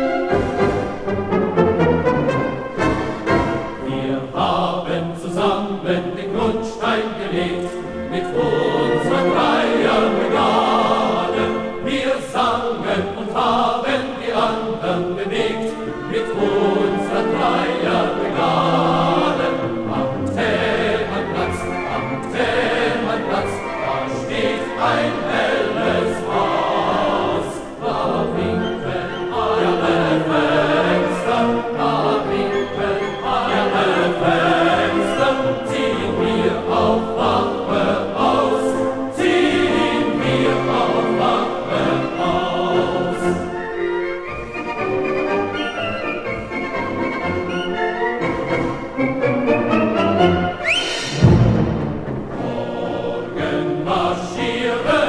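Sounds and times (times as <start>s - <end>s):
choir singing with instruments: 0.0s - 55.0s.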